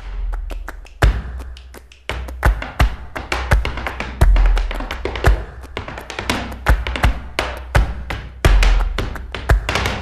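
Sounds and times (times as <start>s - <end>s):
flamenco music: 0.0s - 10.0s
sharp percussive strikes: 0.0s - 10.0s.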